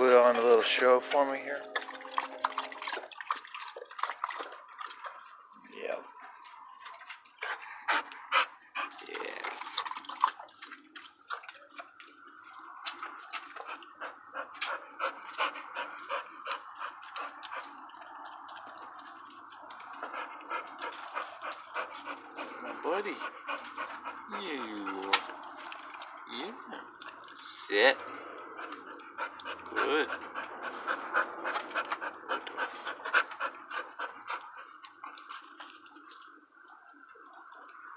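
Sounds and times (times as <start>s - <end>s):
dog panting: 7.1s - 10.3s, 12.9s - 27.3s, 28.0s - 36.0s.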